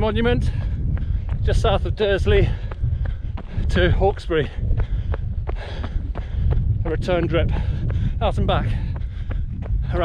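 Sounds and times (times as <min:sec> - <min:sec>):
footsteps on gravel: 0:00.0 - 0:10.0
wind buffeting microphone: 0:00.0 - 0:10.0.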